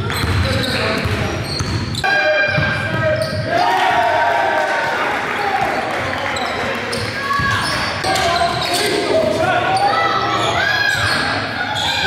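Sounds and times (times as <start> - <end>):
basketball bouncing on gym floor: 0.0 - 2.0
sneakers squeaking on hardwood: 0.0 - 3.5, 6.4 - 9.0
players' voices: 0.0 - 12.0.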